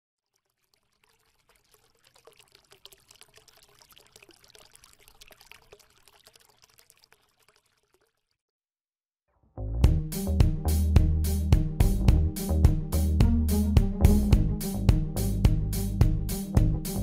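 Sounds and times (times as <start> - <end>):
water pouring and trickling: 0.1 - 8.5.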